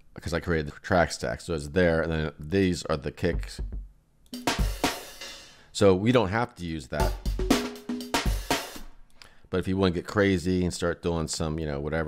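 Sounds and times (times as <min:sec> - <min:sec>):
programmed drum kit beat: 0:03.3 - 0:05.6, 0:07.0 - 0:09.0.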